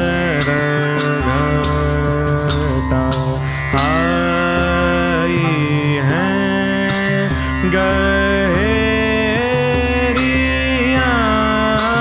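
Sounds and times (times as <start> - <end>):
devotional song: 0.0 - 12.0.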